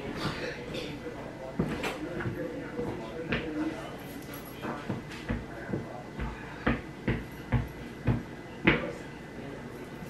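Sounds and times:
footsteps on wooden floor: 1.5s - 3.8s, 4.6s - 8.9s.

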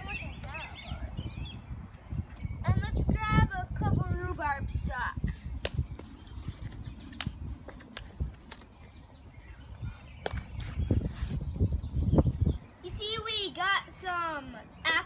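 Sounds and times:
stalks snapping: 7.1s - 8.7s, 10.2s - 10.8s.

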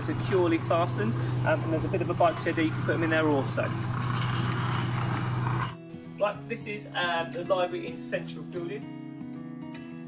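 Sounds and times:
low hum with hiss: 0.0s - 5.8s
soft guitar music: 5.3s - 10.0s.

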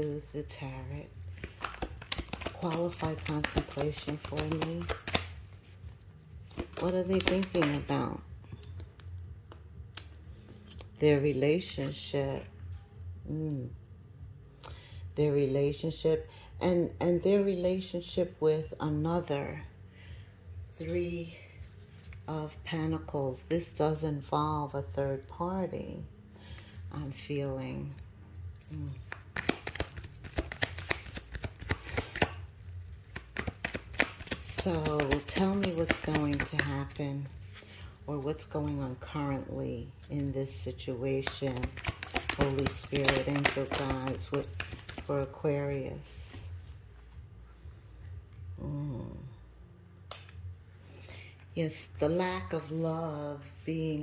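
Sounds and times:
cards being shuffled: 0.0s - 11.0s, 28.6s - 39.0s, 40.0s - 45.3s.

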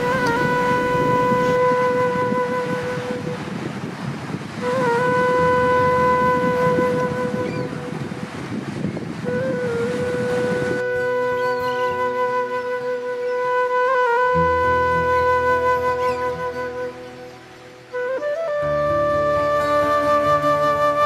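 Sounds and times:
flute-like wind instrument: 0.0s - 21.0s
ocean surf: 0.0s - 21.0s.

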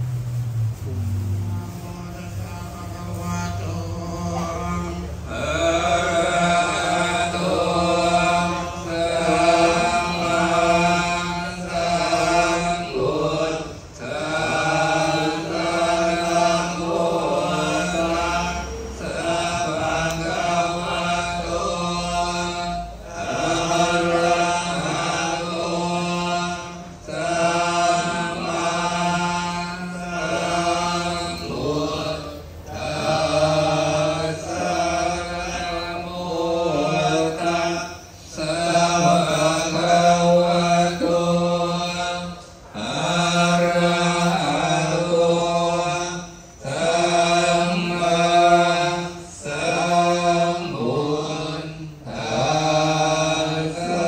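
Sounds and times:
monks chanting in monotone: 0.0s - 54.0s.

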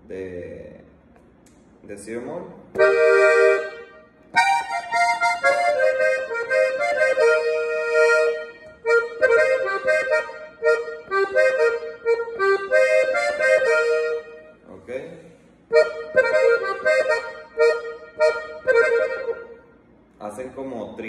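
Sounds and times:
piano accordion melody: 2.7s - 19.9s.

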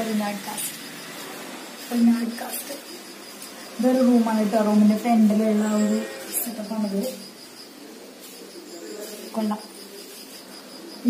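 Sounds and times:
insect chirping trill: 0.0s - 11.0s.

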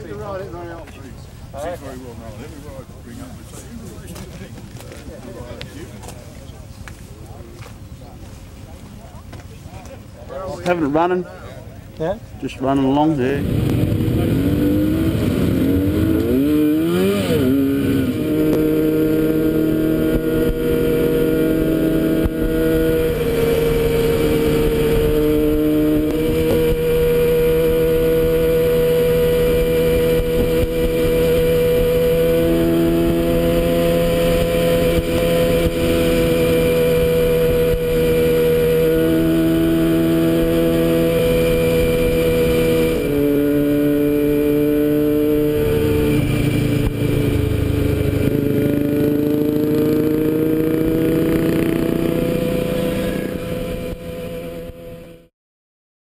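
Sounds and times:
motorcycle engine running: 13.2s - 55.3s.

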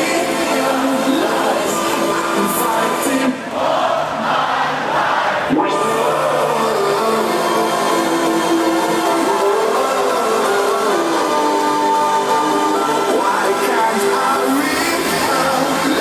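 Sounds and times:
electronic dance music: 0.0s - 4.2s, 5.4s - 16.0s
crowd noise: 0.0s - 16.0s.

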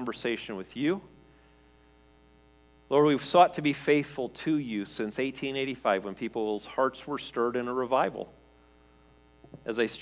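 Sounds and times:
man talking: 0.0s - 1.2s, 2.9s - 8.4s, 9.6s - 10.0s
faint electrical hum: 0.0s - 10.0s.

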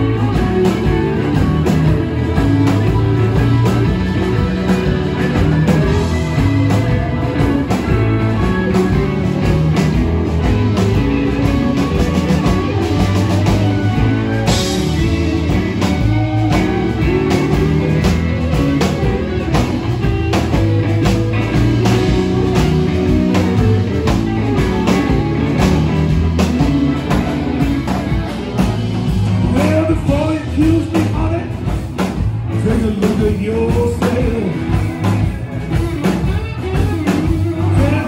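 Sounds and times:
drum kit: 0.0s - 38.0s
electric guitars: 0.0s - 38.0s
person singing: 29.4s - 31.8s, 32.5s - 35.0s, 37.1s - 38.0s.

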